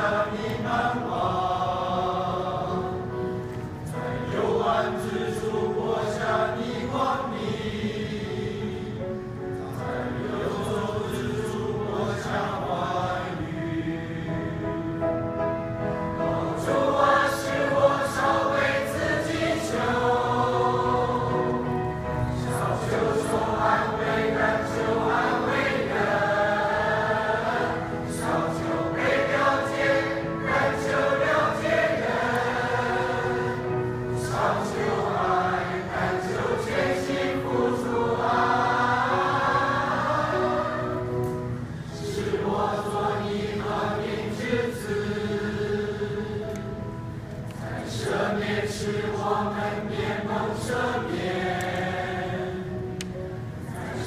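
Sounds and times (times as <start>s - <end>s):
mixed choir singing hymn: 0.0s - 54.0s.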